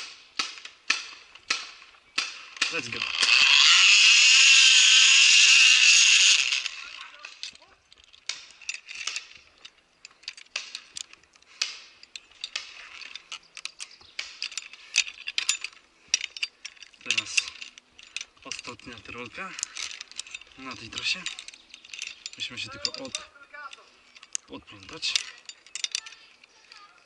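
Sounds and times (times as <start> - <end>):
carabiners clinking and rattling: 0.0 - 27.0
zipline pulley whirring on cable: 2.8 - 7.4.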